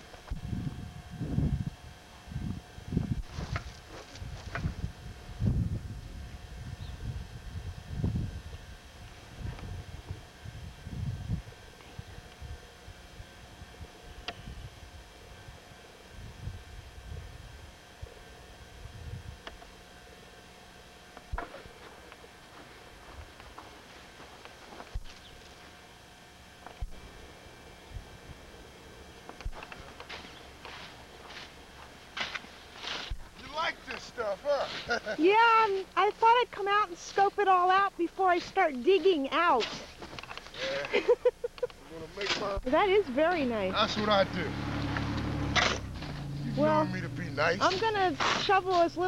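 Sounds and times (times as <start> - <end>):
faint steady hum: 0.0 - 49.0
crunching and scraping in snow: 3.2 - 4.9, 29.8 - 36.4
voices: 33.4 - 39.9, 40.6 - 49.0.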